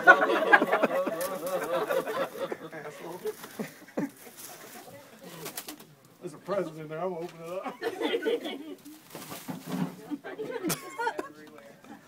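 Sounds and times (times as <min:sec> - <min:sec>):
plastic wrap crinkling: 0:03.0 - 0:05.9, 0:08.8 - 0:10.0.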